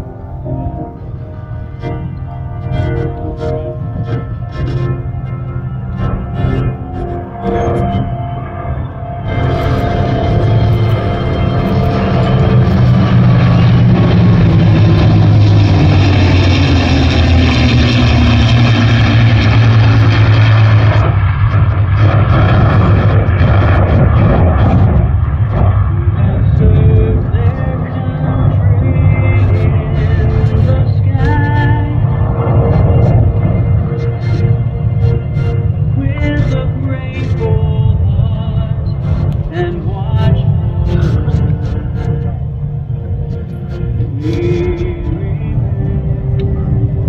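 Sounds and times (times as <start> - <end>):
music: 0.0 - 17.3, 22.0 - 47.0
jet and piston aircraft engines: 0.0 - 47.0.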